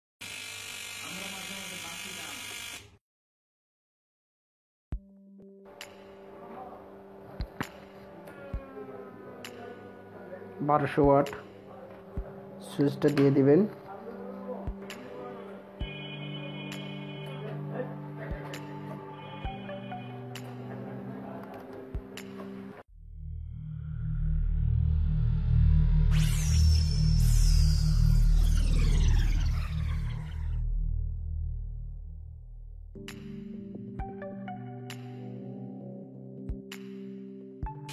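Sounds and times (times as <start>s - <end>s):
electric fishing shocker buzzing: 0.2s - 3.0s
deep low drone: 22.9s - 32.9s.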